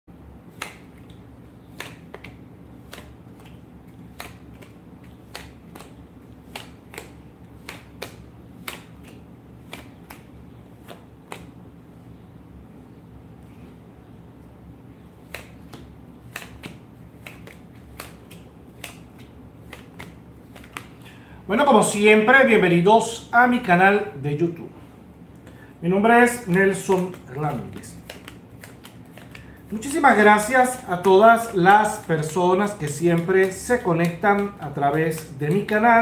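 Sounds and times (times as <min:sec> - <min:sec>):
low steady hum: 0:00.1 - 0:36.0
cards handled on a desk: 0:00.5 - 0:11.6, 0:15.1 - 0:21.1, 0:25.4 - 0:36.0.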